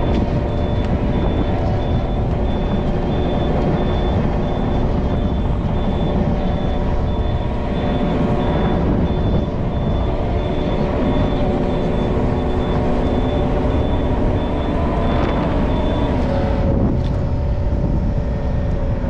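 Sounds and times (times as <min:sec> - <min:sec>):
high beeping: 0:00.0 - 0:16.6
excavator diesel engine running: 0:00.0 - 0:19.0
hydraulics working: 0:00.0 - 0:19.0.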